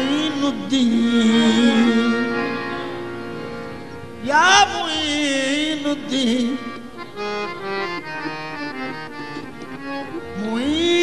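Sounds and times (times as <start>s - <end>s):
harmonium melody: 0.0s - 11.0s.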